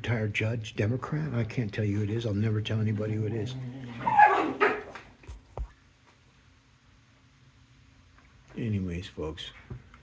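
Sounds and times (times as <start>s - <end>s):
dog barking: 3.8s - 5.0s.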